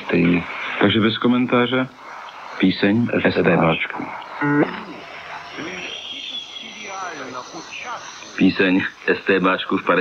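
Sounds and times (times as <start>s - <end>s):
tape hiss: 0.0s - 10.0s.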